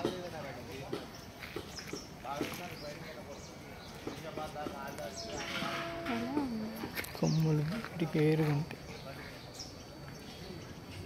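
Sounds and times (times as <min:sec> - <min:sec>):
people talking: 0:02.2 - 0:11.0
long drawn-out vocal call: 0:05.1 - 0:07.0.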